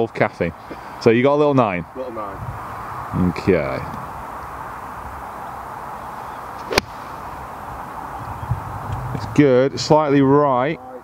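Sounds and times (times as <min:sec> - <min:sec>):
background hiss: 0:00.0 - 0:11.0
golf club striking ball: 0:06.6 - 0:07.3.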